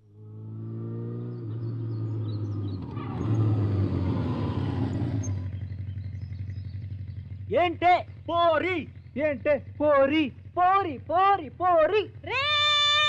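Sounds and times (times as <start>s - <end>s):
motorcycle engines revving: 0.0s - 13.0s.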